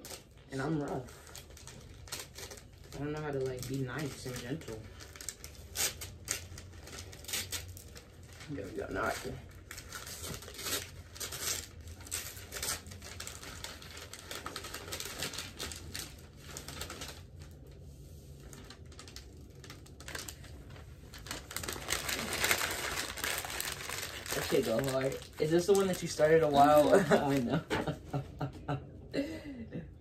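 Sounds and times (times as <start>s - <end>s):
paper crinkling and tearing: 0.0s - 27.9s.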